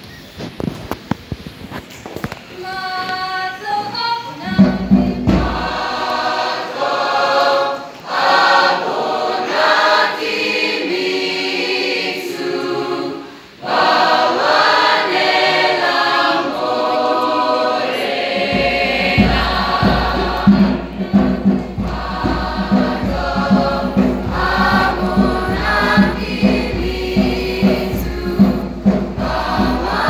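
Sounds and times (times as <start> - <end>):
school choir singing: 4.3 - 30.0.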